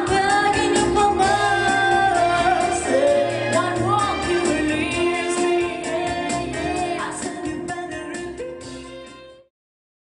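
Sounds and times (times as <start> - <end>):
woman singing pop song: 0.0 - 8.7
backing music with steady beat: 0.0 - 9.5.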